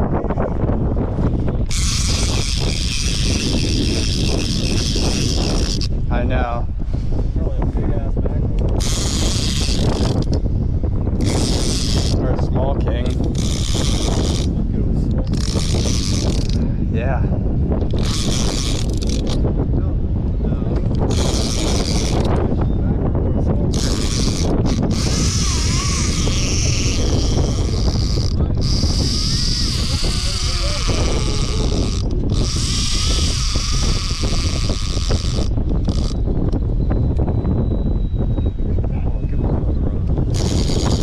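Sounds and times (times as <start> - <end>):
wind rumble on microphone: 0.0 - 41.0
fishing reel whirring: 1.3 - 6.3, 8.7 - 10.5, 11.2 - 14.6, 15.2 - 16.7, 17.8 - 19.6, 20.9 - 22.6, 23.7 - 37.3, 40.2 - 41.0.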